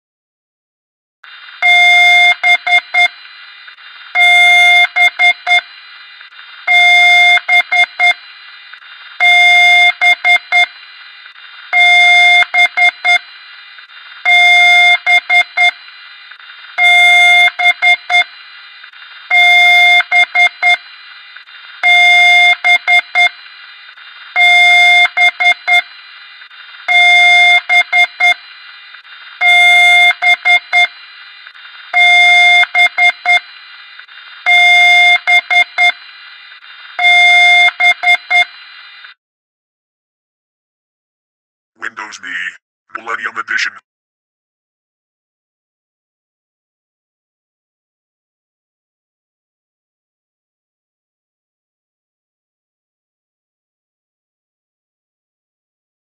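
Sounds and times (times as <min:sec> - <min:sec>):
steady hiss: 0:03.0 - 0:04.2, 0:04.8 - 0:06.7, 0:18.2 - 0:19.4, 0:23.0 - 0:32.0, 0:33.4 - 0:37.0.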